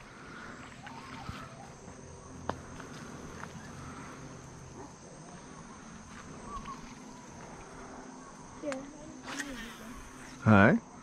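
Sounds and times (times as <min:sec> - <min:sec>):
insect calls: 0:00.0 - 0:11.0.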